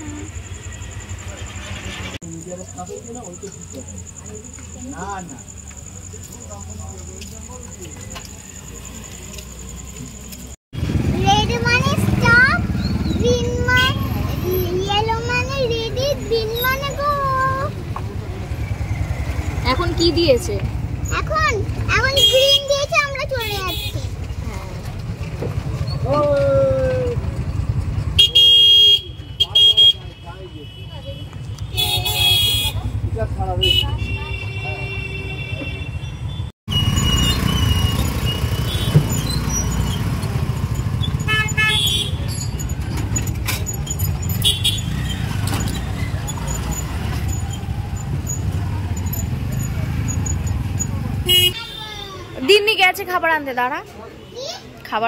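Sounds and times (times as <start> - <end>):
vehicle rumble: 0.0 - 51.6
vehicle horns honking: 28.2 - 39.2, 41.2 - 42.5, 44.3 - 45.4, 51.2 - 52.6.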